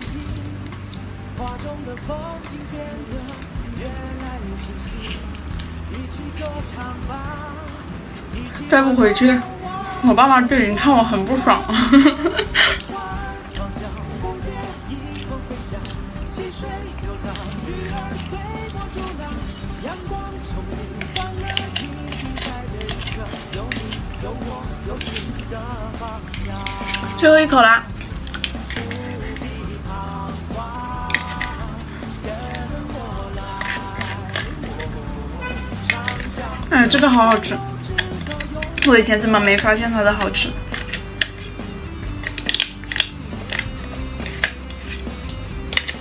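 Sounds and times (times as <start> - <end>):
background music: 0.0 - 46.0
plastic spoon scraping foil tray: 1.4 - 46.0.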